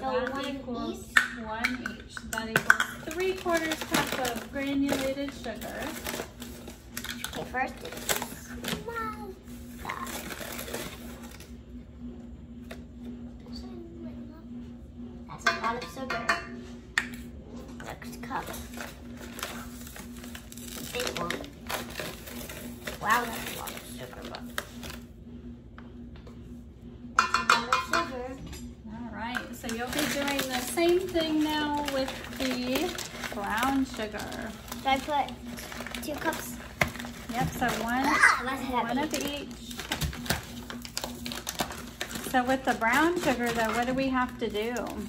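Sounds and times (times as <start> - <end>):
measuring cups clinking on metal bowl: 15.4 - 16.6, 27.2 - 28.6
paper bag rustling: 29.8 - 45.0.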